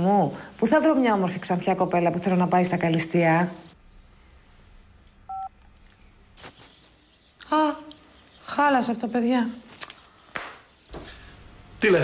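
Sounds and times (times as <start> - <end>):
phone keypad beep: 5.3 - 5.5.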